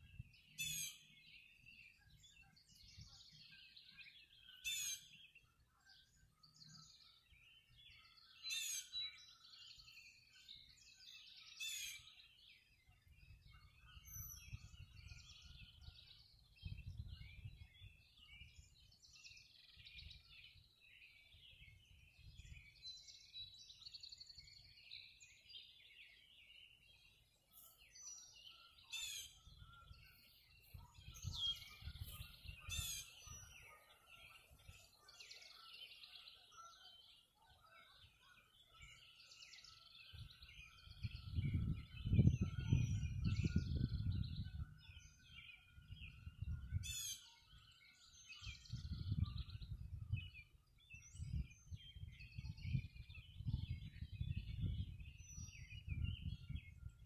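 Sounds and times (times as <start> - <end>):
songbirds chirping and trilling: 0.0 - 57.0.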